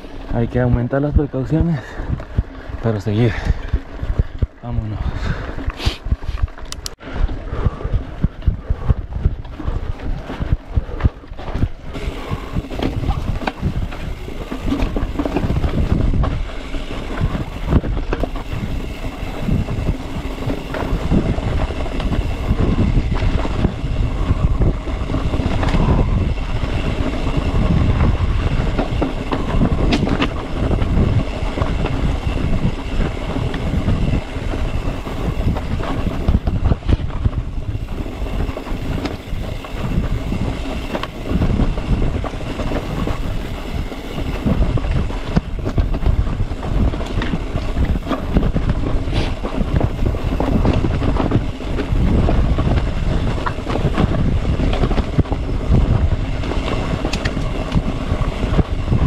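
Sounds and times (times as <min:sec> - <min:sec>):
bike clicking and rattling: 0:00.0 - 0:59.0
bike tyres rumbling on dirt: 0:00.0 - 0:59.0.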